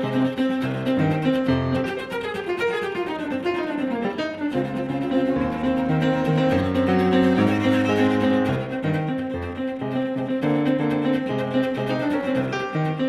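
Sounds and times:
cello and piano playing: 0:00.0 - 0:13.0.

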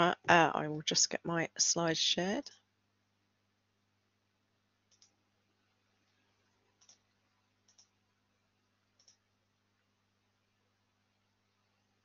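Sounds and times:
faint computer mouse clicks: 0:04.9 - 0:05.2, 0:06.8 - 0:07.1, 0:07.7 - 0:08.0, 0:09.0 - 0:09.2.

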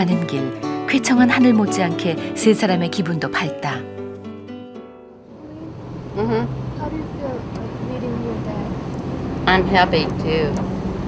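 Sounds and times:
background music: 0:00.0 - 0:07.8
van road noise from inside: 0:05.2 - 0:11.0.

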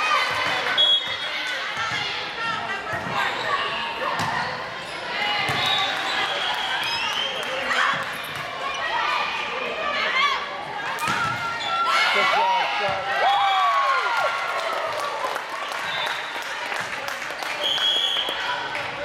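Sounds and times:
players and spectators voices: 0:00.0 - 0:19.0.

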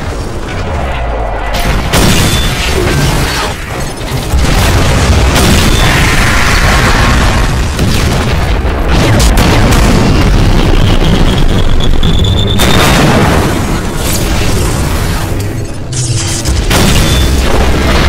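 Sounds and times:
explosion booms: 0:01.6 - 0:02.8, 0:04.3 - 0:14.0.

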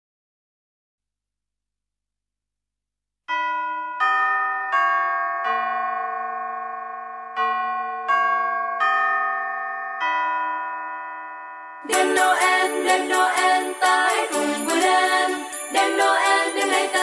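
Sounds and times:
bell-like chime tones: 0:03.3 - 0:17.0.

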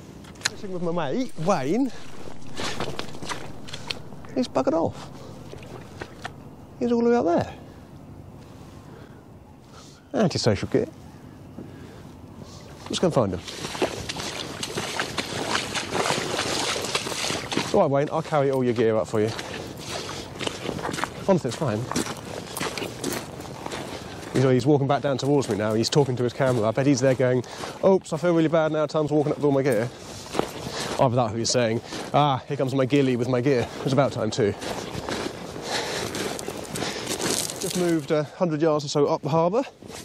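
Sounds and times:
footsteps crunching on shingle: 0:00.4 - 0:07.4, 0:13.4 - 0:28.4, 0:33.6 - 0:38.2.

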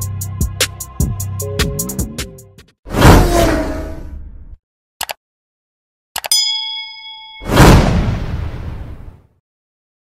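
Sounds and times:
notification bell ding: 0:06.3 - 0:07.6.

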